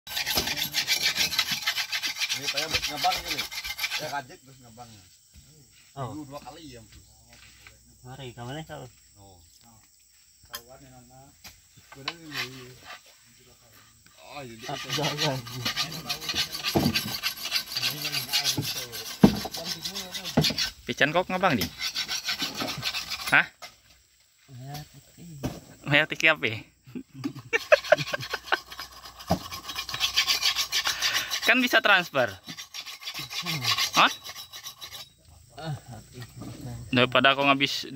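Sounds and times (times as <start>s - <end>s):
abrasive scraping steel blade: 0.1s - 4.3s, 12.2s - 13.0s, 14.4s - 20.8s, 21.4s - 23.5s, 27.6s - 35.2s.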